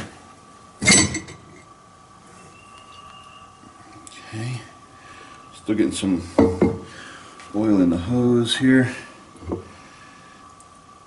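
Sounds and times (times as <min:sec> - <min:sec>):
metal lid clanking: 0:00.8 - 0:01.6.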